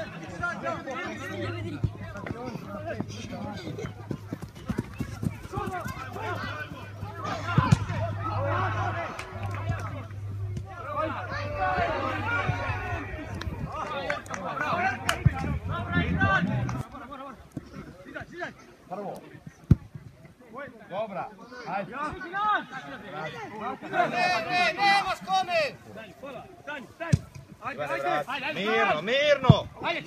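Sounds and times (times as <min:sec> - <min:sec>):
men calling and shouting: 0:00.0 - 0:30.0
steady low hum: 0:02.8 - 0:17.0.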